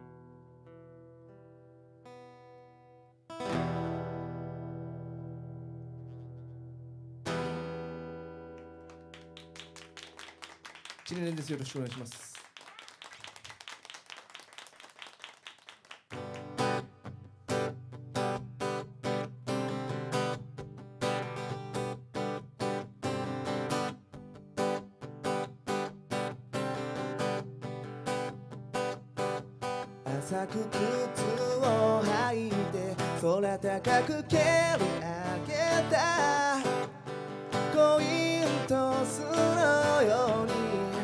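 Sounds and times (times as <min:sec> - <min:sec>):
acoustic guitar playing: 0:00.0 - 0:10.2, 0:16.1 - 0:41.0
man singing: 0:30.0 - 0:41.0.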